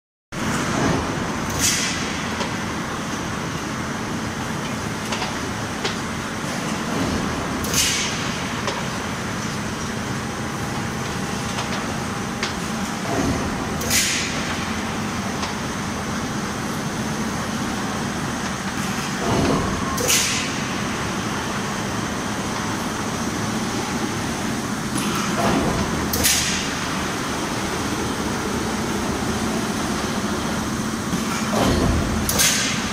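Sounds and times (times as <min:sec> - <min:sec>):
steel sheet line machinery running: 0:00.4 - 0:32.9.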